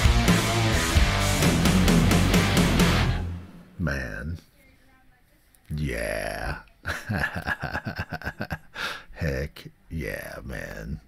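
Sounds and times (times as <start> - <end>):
man laughing: 5.8 - 9.4.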